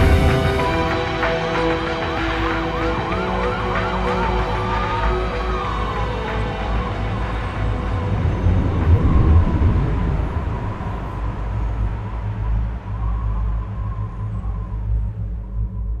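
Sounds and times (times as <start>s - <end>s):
low rumbling drone: 0.0s - 16.0s.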